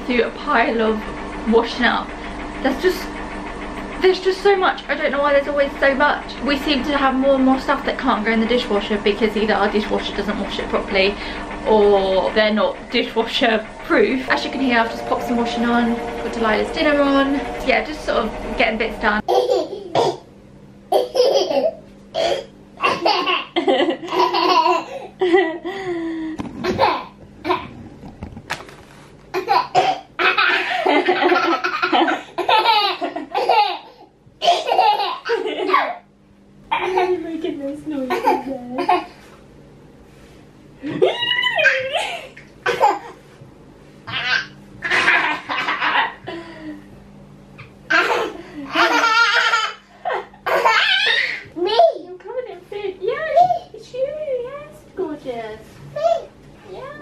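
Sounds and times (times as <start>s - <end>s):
toddler belly laughing: 19.3s - 20.2s, 20.9s - 25.8s, 26.6s - 27.7s, 29.3s - 36.0s, 47.9s - 51.8s.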